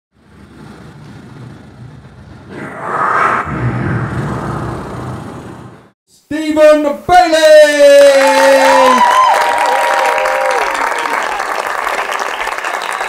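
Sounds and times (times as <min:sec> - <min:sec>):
low rumbling whoosh: 0:02.0 - 0:06.0.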